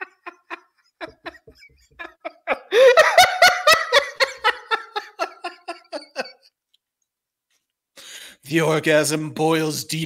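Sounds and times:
man laughing: 0.0s - 6.5s.

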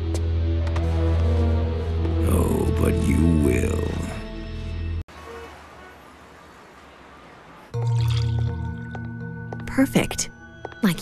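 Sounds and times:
distant road traffic rumble: 5.1s - 7.8s.

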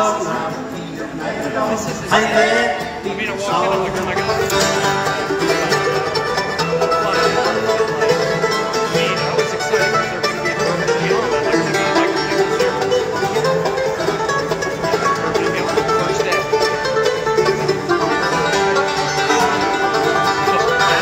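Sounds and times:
acoustic guitar picking: 0.0s - 21.0s
banjo: 0.0s - 21.0s
mandolin: 0.0s - 21.0s.

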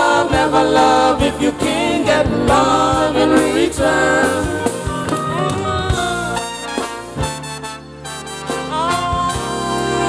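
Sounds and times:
drum strikes: 0.0s - 7.4s
brass-like lead melody: 0.9s - 10.0s.

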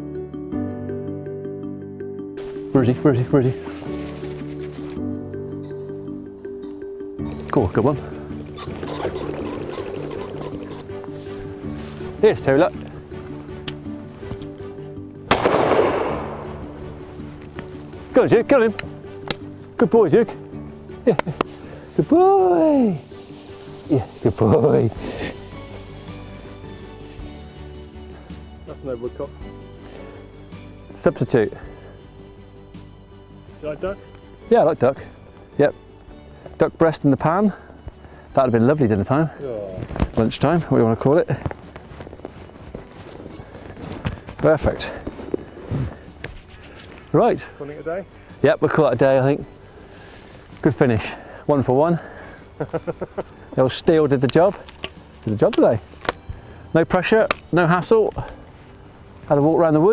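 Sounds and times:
background music: 0.0s - 59.9s
low wind noise: 2.4s - 59.9s
leather bag rustling: 3.3s - 5.0s, 8.6s - 15.0s, 21.4s - 28.2s, 39.5s - 47.2s, 53.6s - 56.5s
shotgun shot with echo: 15.3s - 16.6s.

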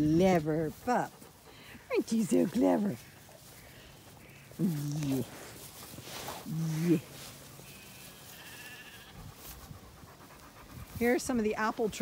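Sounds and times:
faint sheep bleat: 7.6s - 9.3s.

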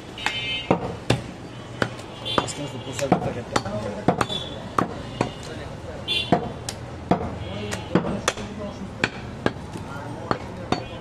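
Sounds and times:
cleaver chopping meat on wood: 0.2s - 5.4s, 6.3s - 11.0s.

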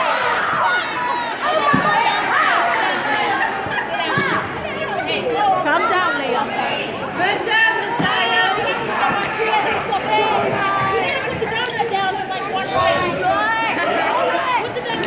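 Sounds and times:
voices chattering and calling out: 0.0s - 15.0s.

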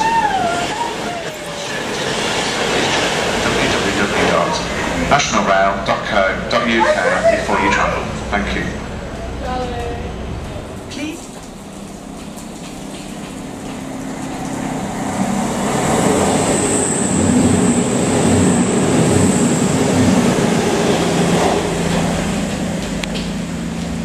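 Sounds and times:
diesel train passing: 0.0s - 24.0s.

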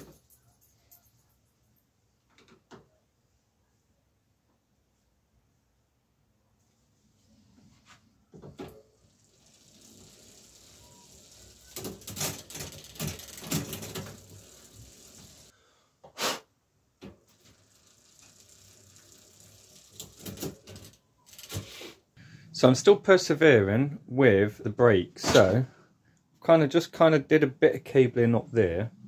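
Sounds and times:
bicycle chain rattling: 9.3s - 15.2s, 17.5s - 21.5s
clicks and clatter: 11.7s - 14.2s.

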